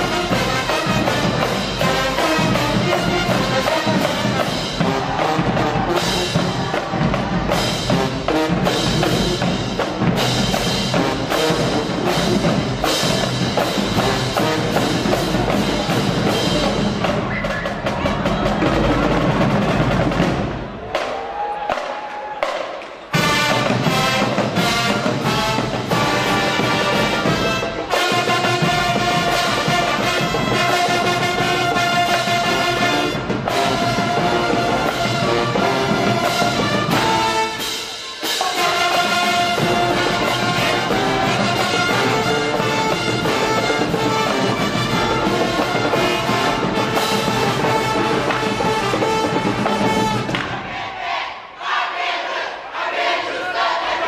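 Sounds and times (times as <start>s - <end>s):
marching band playing: 0.0s - 54.0s
horns holding notes: 23.1s - 50.6s.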